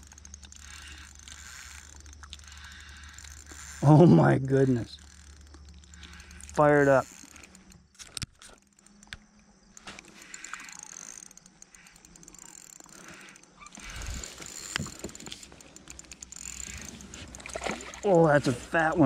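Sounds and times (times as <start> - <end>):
fishing tackle clicks and knocks: 0.0 - 3.8, 5.0 - 18.3.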